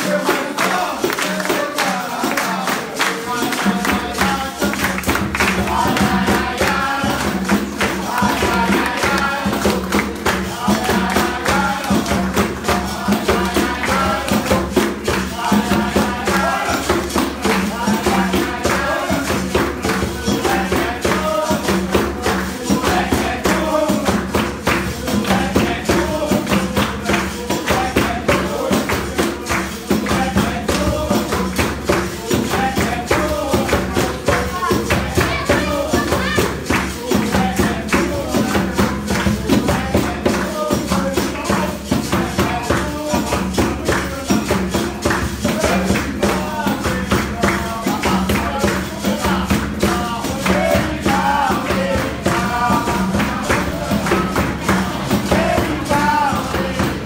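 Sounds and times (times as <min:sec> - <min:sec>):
hand drum: 0:00.0 - 0:57.0
jingling percussion: 0:00.0 - 0:57.0
people singing: 0:00.0 - 0:57.0.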